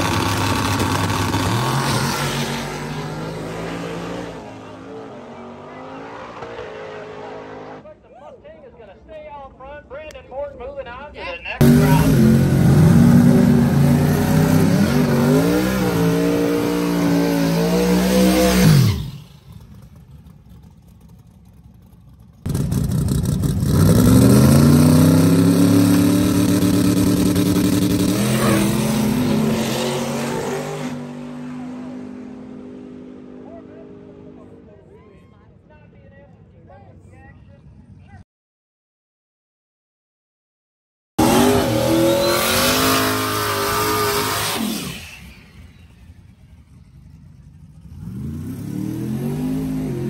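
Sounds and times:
drag race cars accelerating: 0.0 - 7.9, 11.6 - 34.8, 41.2 - 50.0.

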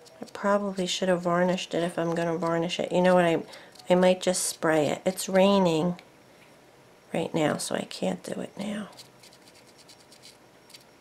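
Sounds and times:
marker tip scratching on wood: 9.0 - 10.8.

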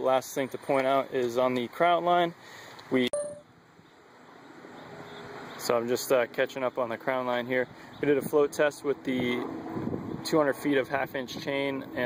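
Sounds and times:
outdoor background noise: 0.0 - 12.0
brief short tone: 3.1 - 3.5.

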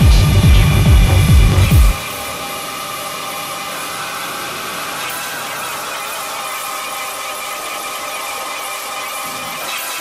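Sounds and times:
fast kick drum: 0.0 - 2.0
hissing synth drone: 0.0 - 10.0.

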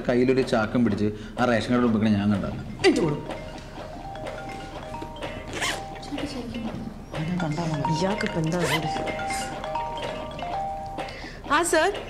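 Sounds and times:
soft background music: 0.0 - 12.0
bag zipper pulled: 5.5 - 5.8.

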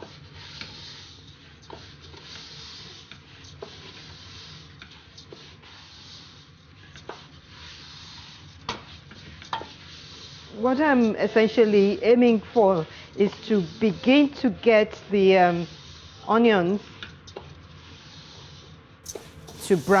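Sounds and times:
wooden spoon stirring rice in pot: 0.0 - 20.0
soft steady hiss: 19.1 - 20.0.

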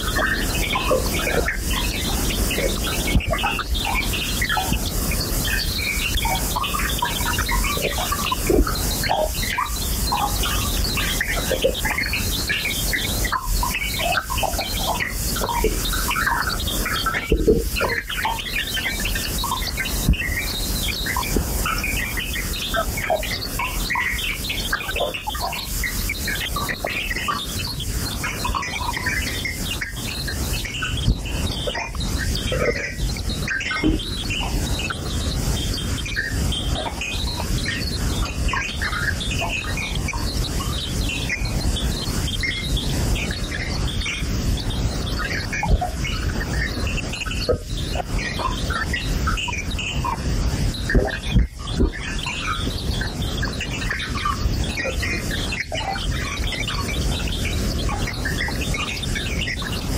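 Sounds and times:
dense noise bed: 0.0 - 59.9.

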